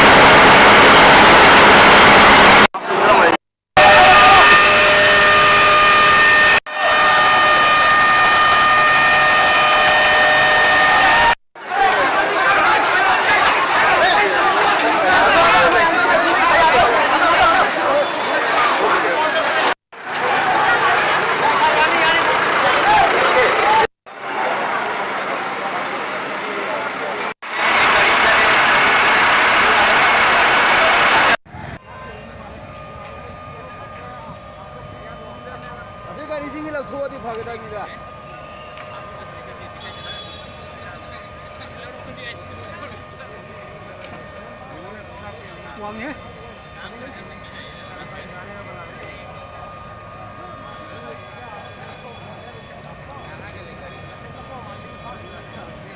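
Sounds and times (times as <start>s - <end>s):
machine-like whine: 0.0s - 3.3s, 20.0s - 55.9s
loud steady rushing noise: 0.0s - 3.4s, 11.0s - 31.8s
crowd voices: 2.7s - 5.8s, 6.7s - 55.9s
fire engine motor running: 4.4s - 55.9s.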